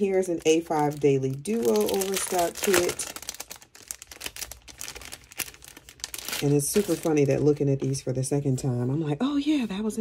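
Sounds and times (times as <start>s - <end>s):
plastic sleeve crinkling: 0.0s - 8.0s.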